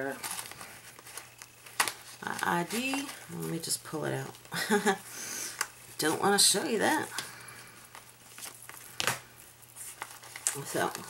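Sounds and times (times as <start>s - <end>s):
wallet rustling and crinkling: 0.0s - 11.0s.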